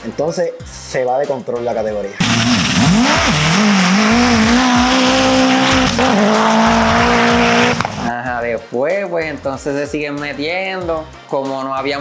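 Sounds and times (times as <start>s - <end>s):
truck engine revving hard: 2.2s - 8.1s.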